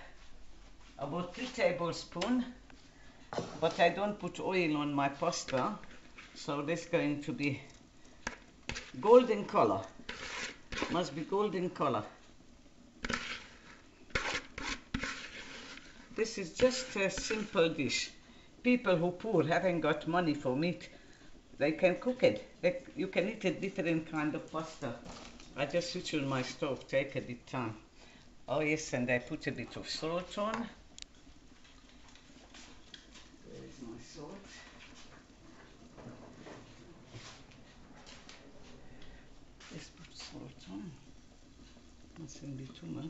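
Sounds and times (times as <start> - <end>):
cabbage rustling and scraping: 8.7 - 11.2, 13.0 - 18.0.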